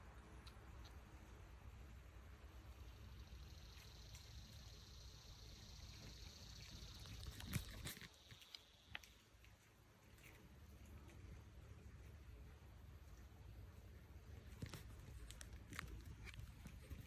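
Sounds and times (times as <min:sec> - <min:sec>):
faint high hum: 0:00.0 - 0:17.0.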